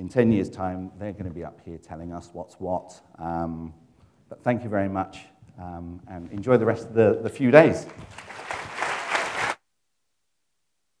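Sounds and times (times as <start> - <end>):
audience applauding: 7.9 - 9.6.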